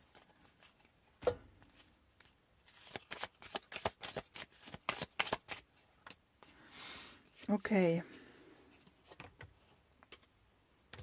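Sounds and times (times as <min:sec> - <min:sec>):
cards being shuffled by hand: 0:01.8 - 0:06.2.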